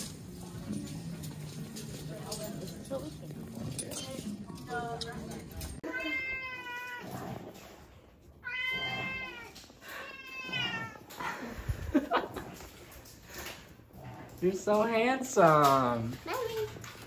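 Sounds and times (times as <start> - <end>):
cat meowing: 5.8 - 7.2, 8.4 - 11.1.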